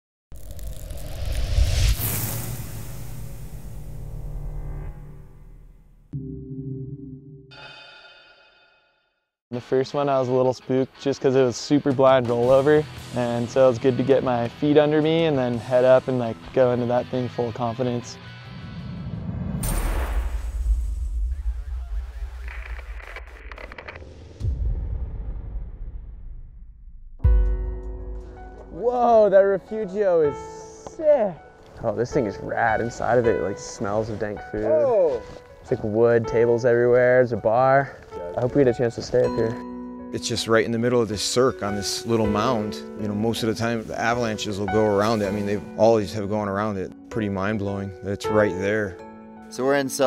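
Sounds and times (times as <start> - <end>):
rising whoosh: 0.3 - 6.1
deep rumble: 0.3 - 6.3, 18.8 - 27.5
glitchy clicks and stutters: 22.1 - 24.3.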